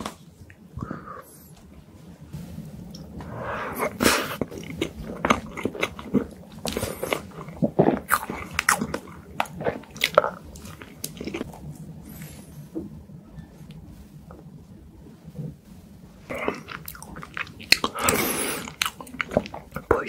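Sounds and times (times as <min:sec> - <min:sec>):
wet chewing mouth sounds: 0:03.8 - 0:11.8, 0:16.3 - 0:20.0.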